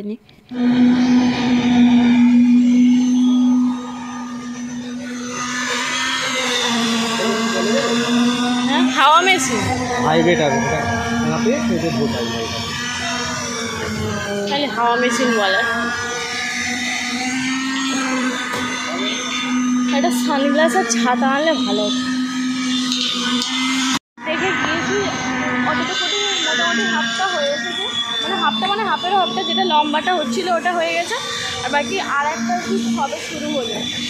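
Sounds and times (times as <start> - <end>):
construction machinery motor humming: 0.3 - 34.0.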